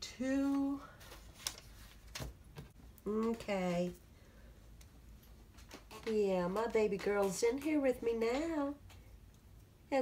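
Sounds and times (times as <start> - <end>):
paper rustling: 0.6 - 2.8.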